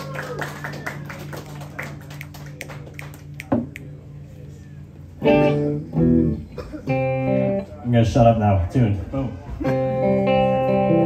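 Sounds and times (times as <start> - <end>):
guitar amplifier electric hum: 0.0 - 11.0.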